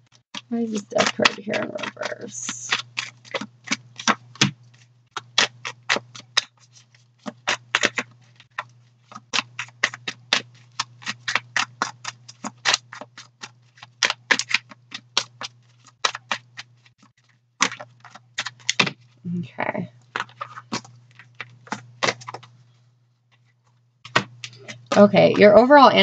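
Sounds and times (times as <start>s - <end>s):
steady low hum: 0.0s - 13.7s
cards being shuffled: 0.1s - 19.2s, 19.9s - 22.6s, 24.1s - 25.5s.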